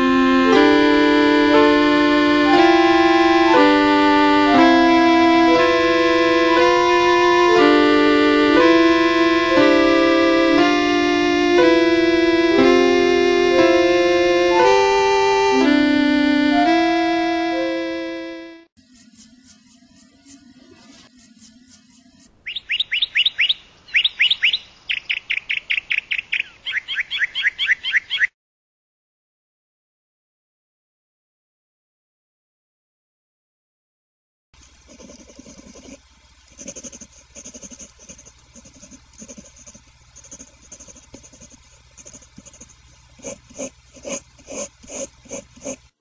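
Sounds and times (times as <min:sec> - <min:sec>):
small bird chirping: 0:21.2 - 0:28.3.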